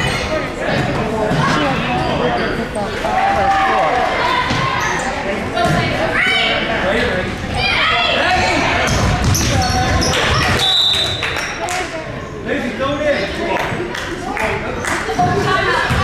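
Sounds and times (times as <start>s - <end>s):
unclear chatter: 0.0s - 16.0s.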